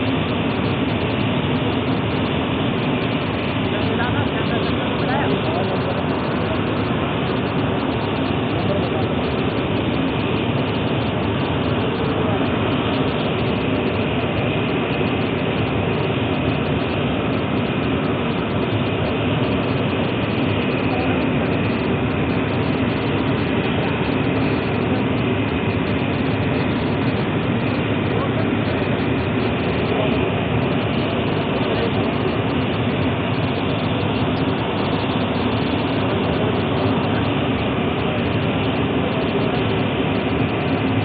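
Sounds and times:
machinery running: 0:00.0 - 0:41.0.

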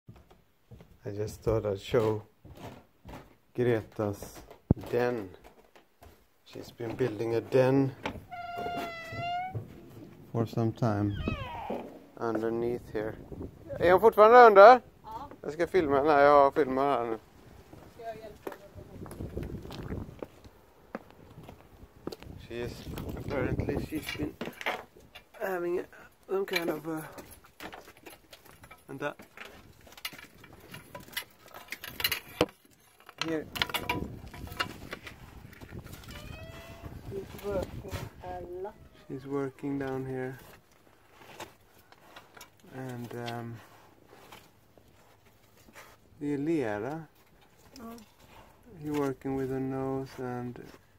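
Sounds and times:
dog whining: 0:08.3 - 0:09.6, 0:11.1 - 0:12.0, 0:36.1 - 0:37.0, 0:38.6 - 0:39.3
person speaking: 0:10.3 - 0:13.0.

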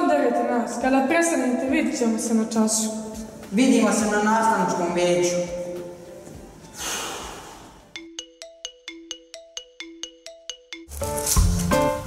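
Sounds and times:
jingle of ringing notes: 0:08.0 - 0:10.9.

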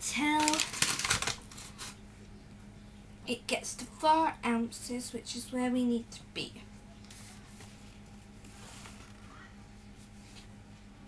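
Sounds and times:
paper flour bag crinkling: 0:00.0 - 0:01.9
low background hum: 0:00.0 - 0:11.0.

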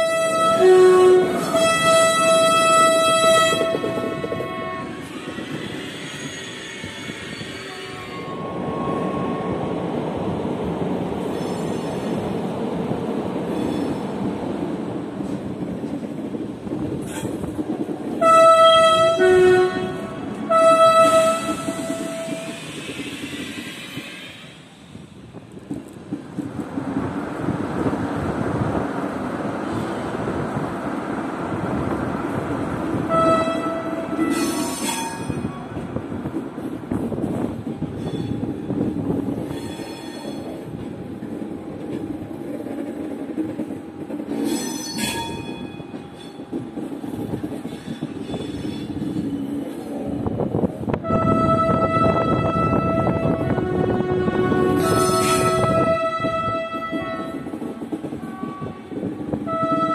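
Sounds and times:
train horn blasts: 0:00.0 - 0:05.3, 0:06.8 - 0:09.7, 0:18.2 - 0:22.6, 0:33.0 - 0:35.8, 0:51.0 - 0:59.9
trains rolling by rumbling: 0:00.0 - 0:59.9.

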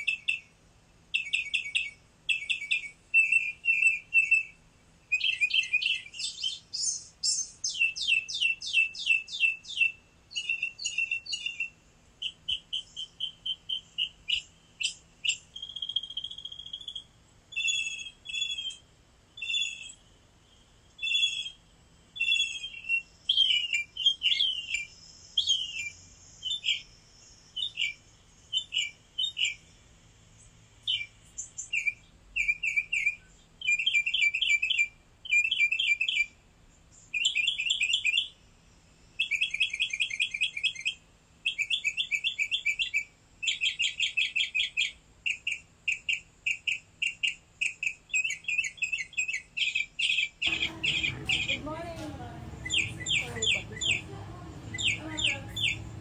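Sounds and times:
small birds chirping: 0:00.0 - 0:56.0.

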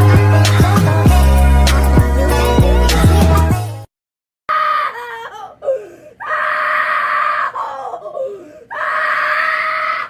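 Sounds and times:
woman crying: 0:04.5 - 0:10.0
woman screaming: 0:04.5 - 0:10.0.

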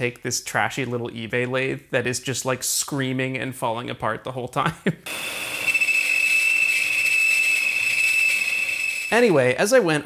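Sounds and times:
metal lathe high-pitched scream: 0:05.1 - 0:09.6.

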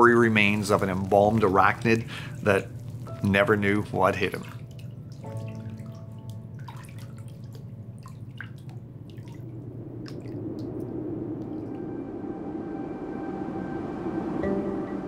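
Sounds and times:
sustained music tones: 0:00.0 - 0:15.0
water dripping into bathtub: 0:00.3 - 0:12.0
whoosh: 0:09.2 - 0:15.0.

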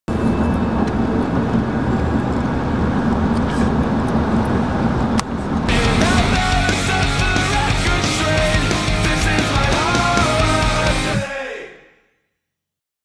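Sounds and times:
van road and engine rumble: 0:00.7 - 0:07.7
loud rock music: 0:05.7 - 0:11.6.

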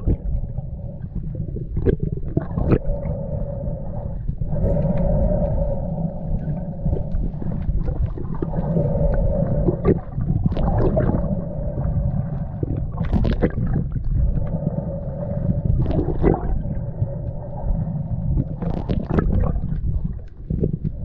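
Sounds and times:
steady droning tone: 0:00.0 - 0:21.0
underwater rumble of moving water: 0:00.0 - 0:21.0.

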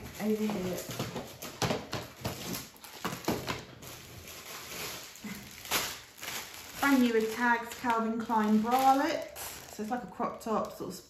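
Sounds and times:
plastic bags rustling and crinkling: 0:00.0 - 0:11.0.

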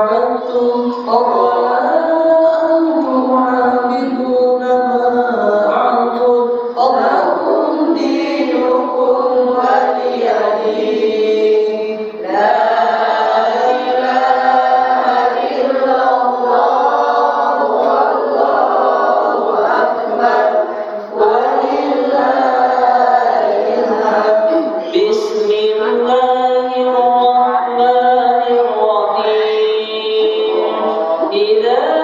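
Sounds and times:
man chanting into a microphone: 0:00.0 - 0:32.0.

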